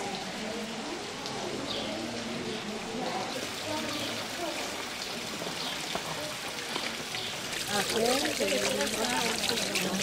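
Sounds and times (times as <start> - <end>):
people talking: 0.0 - 6.6, 7.7 - 10.0
fountain splashing into basin: 0.0 - 10.0.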